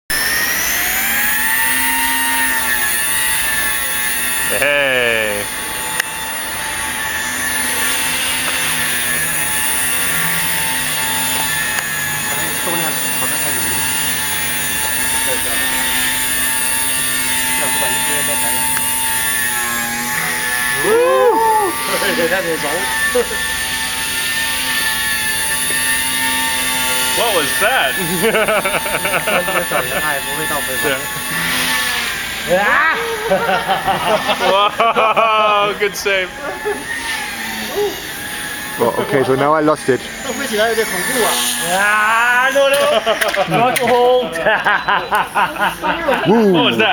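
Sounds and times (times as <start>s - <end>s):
toy helicopter motor whine: 0.1s - 46.9s
man laughing: 4.5s - 5.5s, 20.8s - 23.5s, 27.7s - 31.2s, 32.5s - 36.9s, 41.7s - 46.9s.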